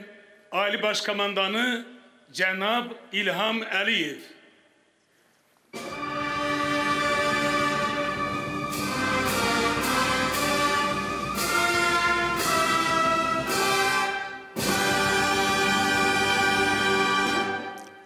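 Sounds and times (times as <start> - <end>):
brass band playing chords: 5.8 - 17.8.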